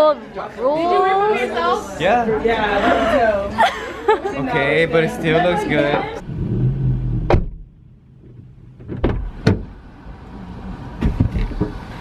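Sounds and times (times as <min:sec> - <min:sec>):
low rumble: 0:06.2 - 0:11.0
car door and seat knocks: 0:08.8 - 0:09.7, 0:11.0 - 0:11.8.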